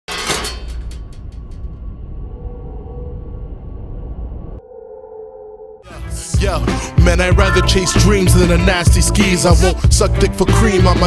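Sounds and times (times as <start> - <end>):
deep rumbling drone: 0.7 - 6.7
held ringing tone: 2.2 - 5.9.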